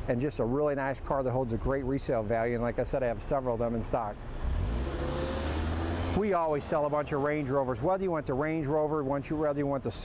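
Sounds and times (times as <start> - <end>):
car engine rumble: 4.2 - 8.5.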